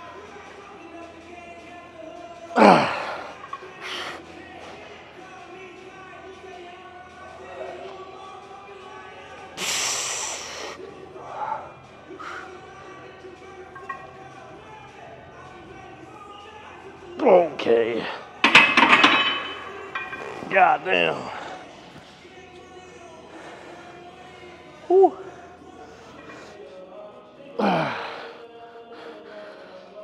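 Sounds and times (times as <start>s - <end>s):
faint background music: 0.0s - 30.0s
strained grunts: 2.6s - 4.0s
hiss of exhaled breath: 9.6s - 10.8s.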